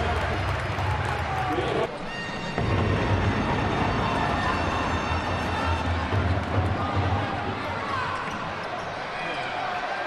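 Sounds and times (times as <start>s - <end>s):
crowd din in a hall: 0.0s - 10.0s.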